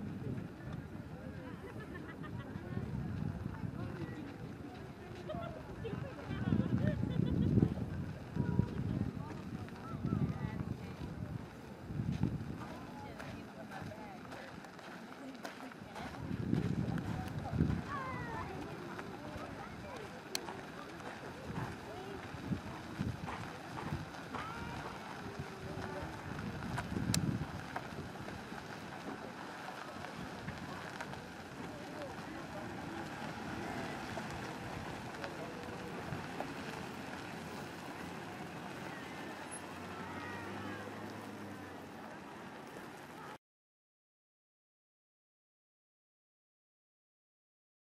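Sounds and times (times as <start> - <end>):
wind buffeting microphone: 0.0 - 14.8, 15.7 - 39.4
distant voices outdoors: 0.0 - 43.4
low engine hum: 0.0 - 43.4
slow vehicle running: 0.0 - 43.4.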